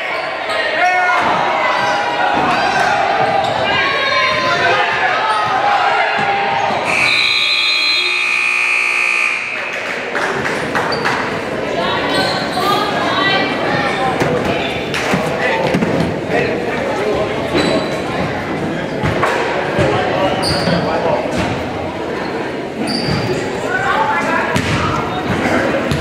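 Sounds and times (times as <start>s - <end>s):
spectators' voices and shouts: 0.0s - 26.0s
scoreboard buzzer: 6.9s - 9.9s.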